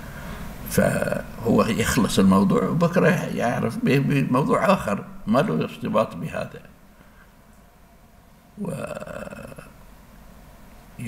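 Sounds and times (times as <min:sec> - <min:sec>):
room noise: 0:00.0 - 0:11.0
man's drawn-out hesitation vowel: 0:08.6 - 0:09.7.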